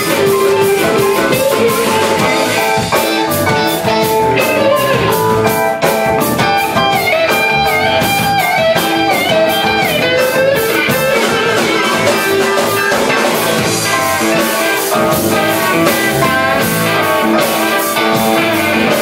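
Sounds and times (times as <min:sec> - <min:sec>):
bass guitar: 0:00.0 - 0:19.0
drums: 0:00.0 - 0:19.0
electric guitars with note bends: 0:00.0 - 0:19.0.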